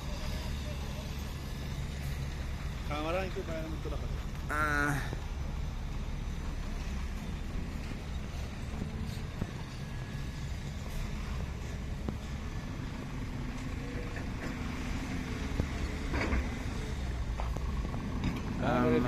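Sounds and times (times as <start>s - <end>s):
heavy construction vehicles rumbling: 0.0s - 19.0s.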